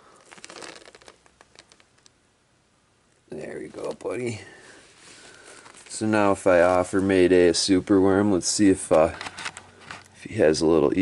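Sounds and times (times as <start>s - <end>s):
crinkling handling noise: 0.0s - 2.3s, 3.1s - 10.5s.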